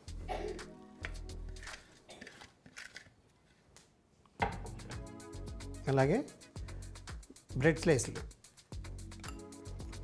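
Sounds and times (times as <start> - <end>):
background music: 0.0 - 2.0, 4.4 - 10.0.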